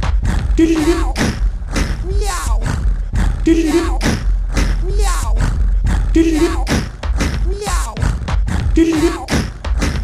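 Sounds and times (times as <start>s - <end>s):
beatboxed rhythm: 0.0s - 10.0s
layered vocal loops singing: 0.0s - 10.0s
steady bass: 0.0s - 10.0s.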